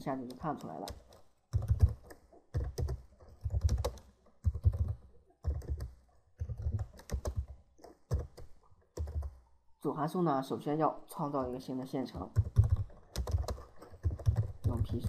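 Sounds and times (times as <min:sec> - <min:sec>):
typing on computer keyboard: 0:00.0 - 0:09.4, 0:12.3 - 0:15.0.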